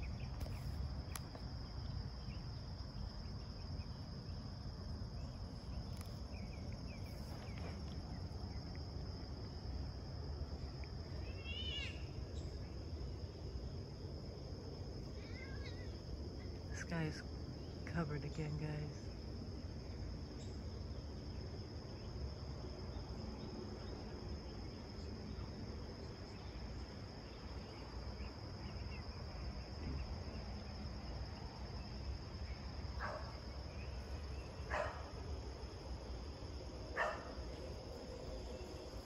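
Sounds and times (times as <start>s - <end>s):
insect chorus trilling: 0.0s - 39.0s
low background rumble: 0.0s - 39.0s.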